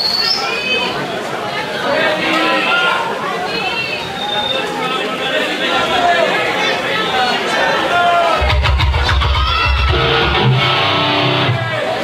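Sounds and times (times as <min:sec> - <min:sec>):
crowd chatter: 0:00.0 - 0:12.0
electric guitar and bass: 0:08.4 - 0:11.8.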